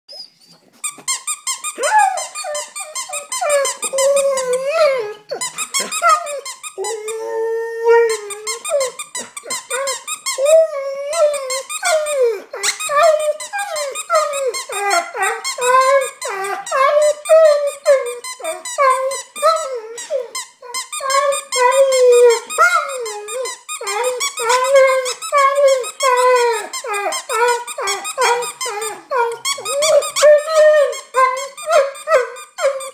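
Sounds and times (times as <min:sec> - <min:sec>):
dog whining: 0:00.1 - 0:32.9.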